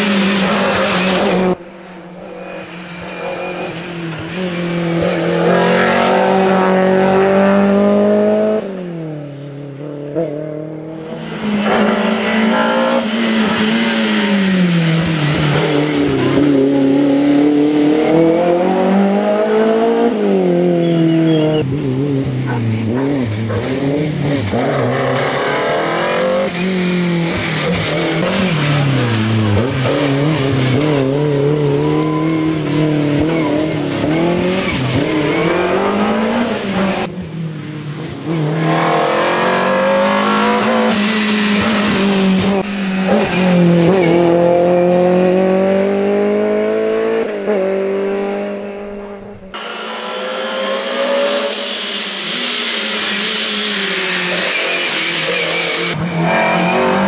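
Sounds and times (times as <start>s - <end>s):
race car engine revving hard: 0.0s - 1.6s, 3.0s - 9.2s, 9.8s - 57.0s.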